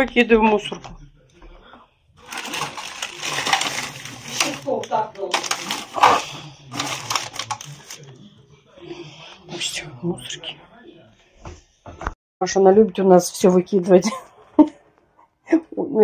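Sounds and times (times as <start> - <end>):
plastic bags rustling: 2.2 - 8.1.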